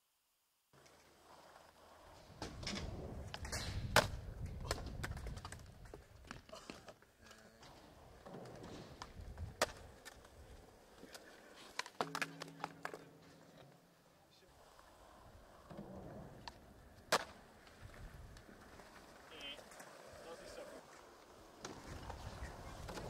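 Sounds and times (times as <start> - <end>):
skateboard wheels rolling on concrete: 0.7 - 23.0
skateboard clacking on ground: 0.8 - 14.0, 14.6 - 23.0.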